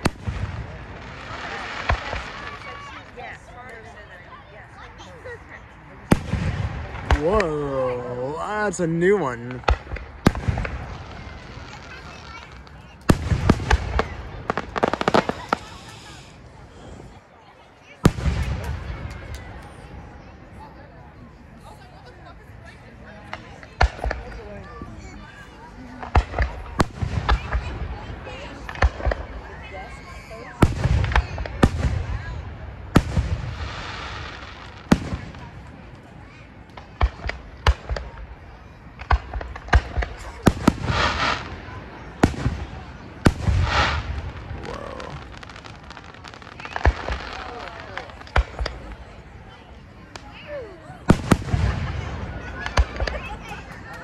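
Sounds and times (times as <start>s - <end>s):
fireworks bursting with booms: 0.0s - 3.5s, 6.0s - 16.8s, 18.0s - 20.2s, 23.2s - 49.5s, 51.0s - 54.0s.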